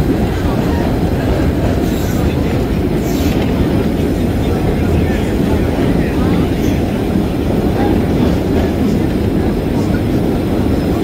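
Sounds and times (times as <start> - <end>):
subway train rumbling on track: 0.0 - 11.0.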